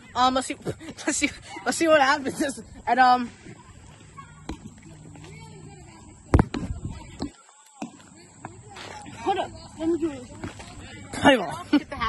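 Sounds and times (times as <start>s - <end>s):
faint children's voices: 0.0s - 12.0s.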